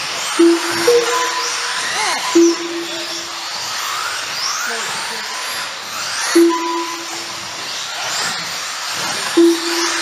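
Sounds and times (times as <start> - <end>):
steady tone: 0.4 - 3.5, 6.4 - 7.5, 9.4 - 10.0
electric toy car motors whining: 1.3 - 6.4, 7.0 - 10.0.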